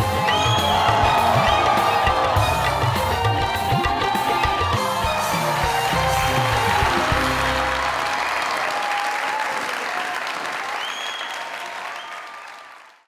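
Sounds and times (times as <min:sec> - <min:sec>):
show music: 0:00.0 - 0:09.0
studio audience applauding: 0:00.0 - 0:13.0.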